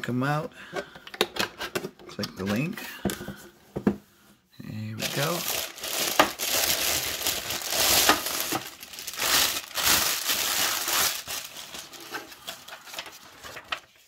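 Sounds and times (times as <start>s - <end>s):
plastic wrap crinkling: 5.0s - 14.0s.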